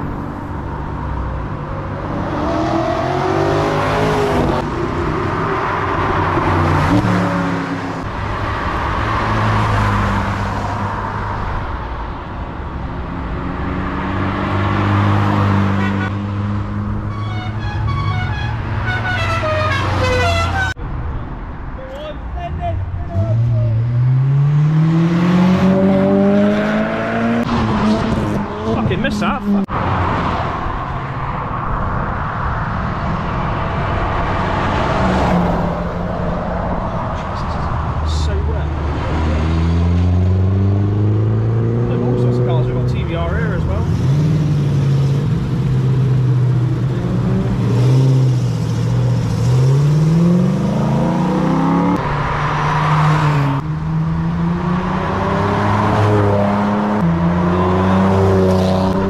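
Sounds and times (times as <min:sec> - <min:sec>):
cars accelerating past: 0:02.0 - 0:11.9, 0:13.0 - 0:17.1, 0:23.2 - 0:59.0.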